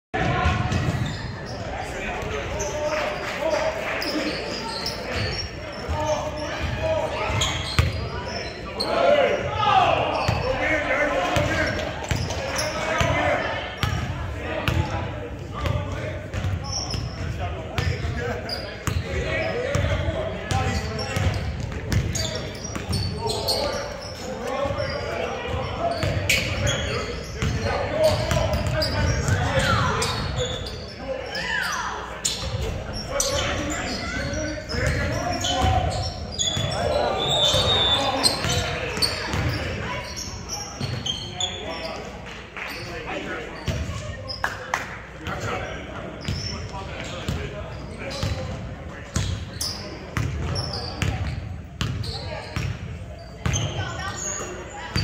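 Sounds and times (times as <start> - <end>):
players calling out: 0.2 - 44.6.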